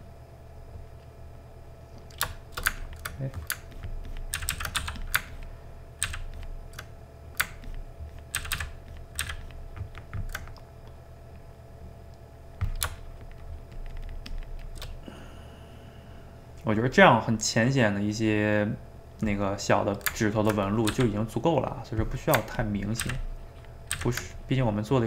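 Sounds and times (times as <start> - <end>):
keyboard and mouse clicking: 2.0 - 11.0, 12.6 - 15.0, 19.9 - 21.1, 23.9 - 24.3.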